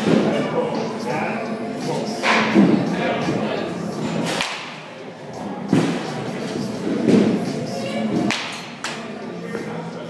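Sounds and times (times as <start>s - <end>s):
baseball bat cracking ball: 4.3s - 4.8s, 8.3s - 8.6s.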